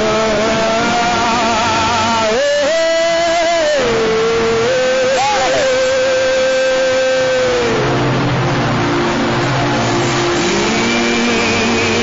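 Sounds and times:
crowd praying aloud: 0:00.0 - 0:12.0
person holding a long note: 0:00.0 - 0:12.0.

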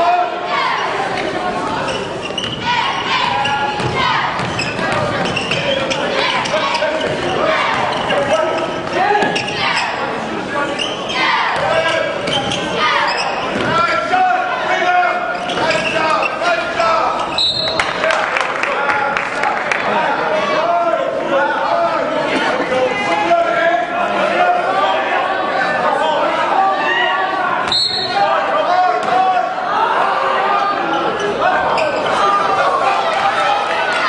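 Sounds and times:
hubbub of voices: 0:00.0 - 0:34.0
basketball bouncing on court: 0:03.8 - 0:05.7.

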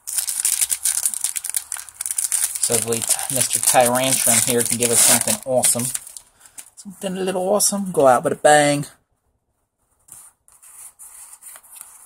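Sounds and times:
trading cards rustling: 0:00.0 - 0:06.8.

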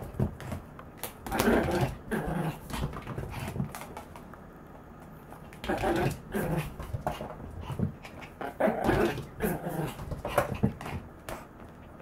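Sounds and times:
dog growling playfully: 0:01.2 - 0:03.4, 0:05.6 - 0:10.8.

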